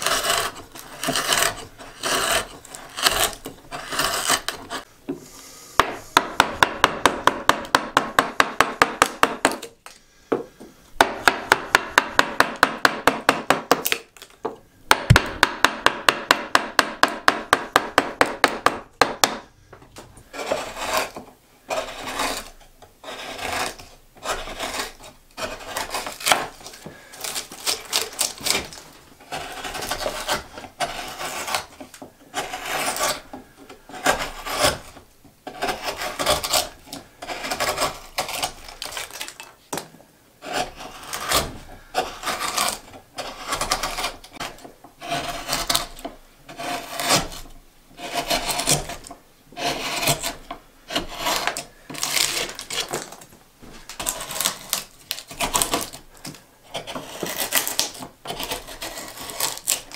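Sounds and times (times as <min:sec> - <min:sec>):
hand gouge scraping wood: 0:00.0 - 0:04.9, 0:20.2 - 0:39.4, 0:40.4 - 0:59.9.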